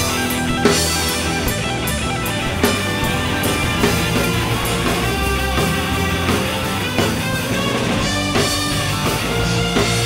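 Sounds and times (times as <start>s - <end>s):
loud drum accents: 0.0s - 10.0s
rock band playing: 0.0s - 10.0s.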